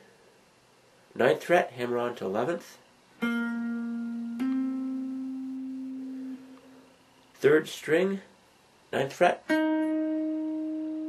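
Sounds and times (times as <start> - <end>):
electric guitar note: 3.2 - 6.9, 9.5 - 11.0.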